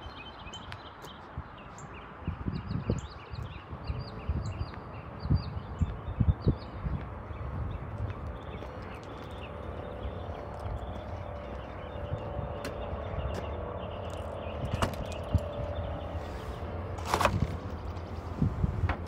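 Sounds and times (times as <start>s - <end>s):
wind and handling noise: 0.0s - 19.0s.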